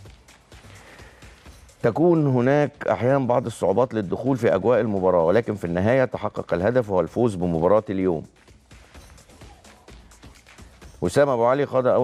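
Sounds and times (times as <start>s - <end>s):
faint background music: 0.0s - 12.0s
man speaking: 1.8s - 8.3s, 11.0s - 12.0s.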